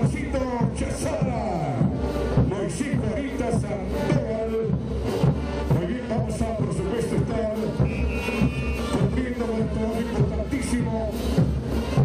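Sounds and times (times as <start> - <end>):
bass drum and cymbal beat: 0.0 - 12.0
brass band playing: 0.0 - 12.0.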